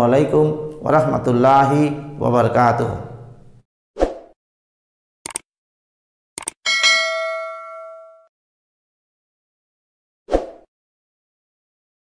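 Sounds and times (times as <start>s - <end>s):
bell-like ding: 6.7s - 8.3s.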